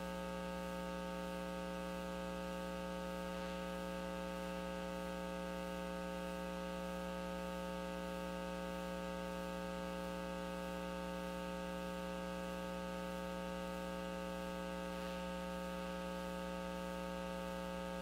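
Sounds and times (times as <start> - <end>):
electrical mains hum: 0.0 - 18.0.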